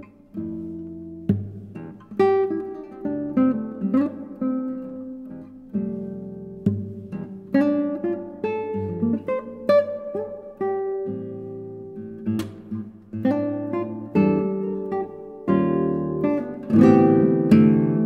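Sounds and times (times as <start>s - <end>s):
classical guitar fingerstyle blues: 0.0s - 18.0s.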